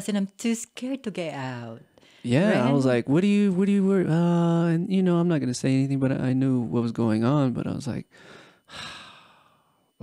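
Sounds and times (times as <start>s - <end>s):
person sighing: 8.2s - 9.6s.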